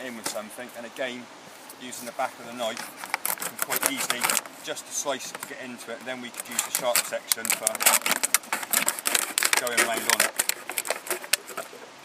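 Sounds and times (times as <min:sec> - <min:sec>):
knife cutting plastic bottle: 0:02.7 - 0:04.5, 0:06.3 - 0:11.8.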